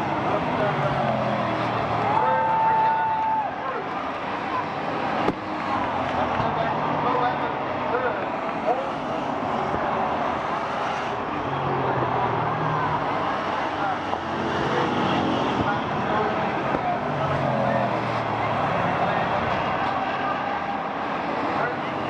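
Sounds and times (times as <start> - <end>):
crowd murmur: 0.0 - 22.0
race car engines passing: 0.0 - 22.0.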